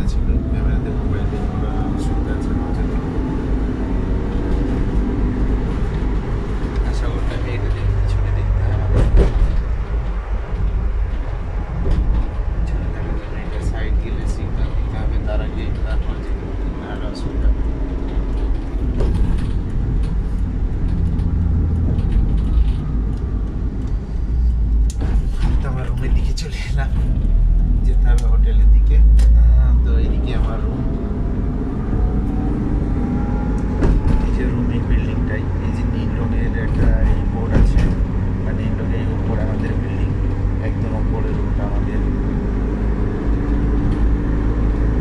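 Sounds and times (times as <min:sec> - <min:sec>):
road and engine noise in vehicle: 0:00.0 - 0:45.0.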